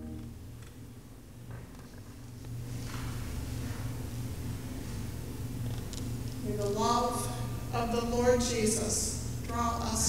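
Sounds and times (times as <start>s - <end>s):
low pulsing hum: 0.0s - 10.0s
woman speaking: 6.4s - 10.0s.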